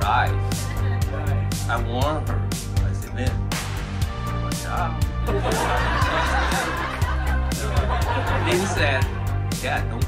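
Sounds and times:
background music with steady beat: 0.0 - 10.0
group of people laughing: 5.3 - 9.1.

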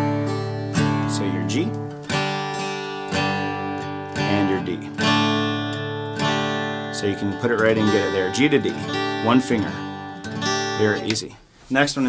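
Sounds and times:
acoustic guitar chords strummed: 0.0 - 11.3.

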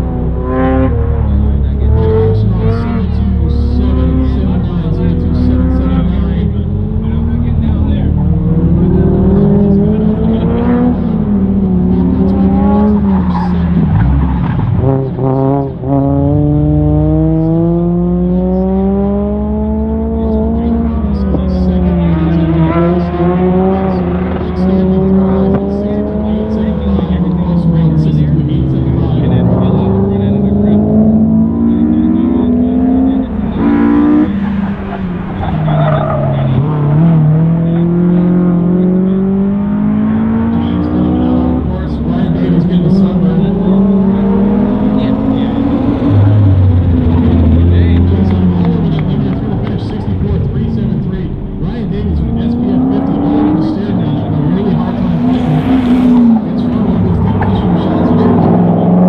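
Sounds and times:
car engine revving: 0.0 - 59.0.

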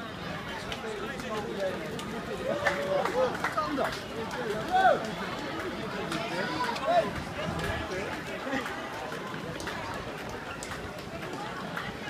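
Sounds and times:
crowd of runners footfalls on brick: 0.0 - 12.0
spectators chatting: 0.0 - 12.0.

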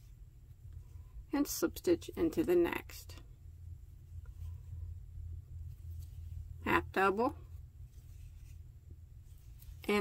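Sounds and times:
low steady hum: 0.0 - 10.0
crochet hook and yarn rustling: 4.1 - 4.9, 5.5 - 10.0.

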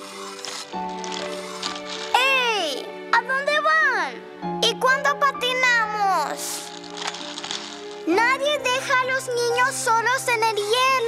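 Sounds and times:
cartoon soundtrack music: 0.4 - 11.0.

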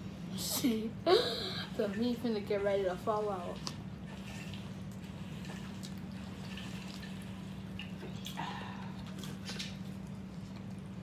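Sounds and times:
steady low hum: 0.0 - 11.0
chewing and biting sandwiches: 3.6 - 11.0.

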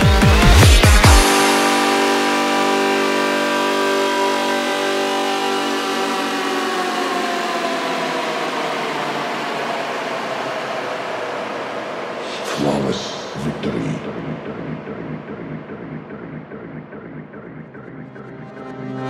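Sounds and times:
sustained synth drone: 0.0 - 19.0.

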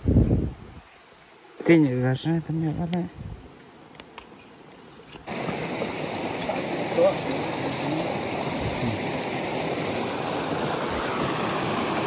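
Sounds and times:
stream water rushing over rocks: 5.2 - 12.0.

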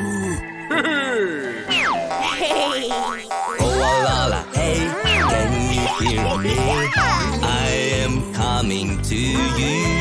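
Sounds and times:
bouncy backing track with bass beat: 3.0 - 10.0.

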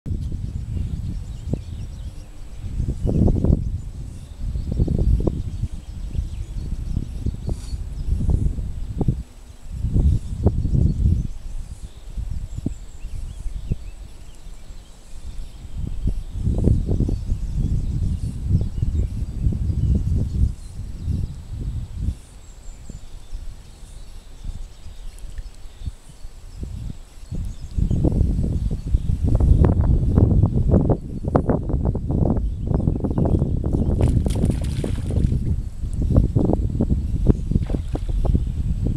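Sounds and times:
wind buffeting microphone: 0.0 - 38.9.

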